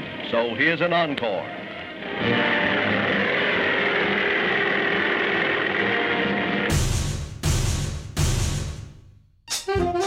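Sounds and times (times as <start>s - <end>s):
engine and propeller drone: 0.0s - 6.7s.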